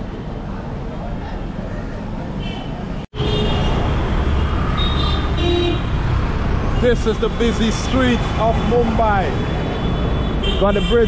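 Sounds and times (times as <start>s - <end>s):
city street traffic rumble: 0.0s - 11.0s
vehicle horn toots: 4.8s - 5.9s, 9.7s - 11.0s.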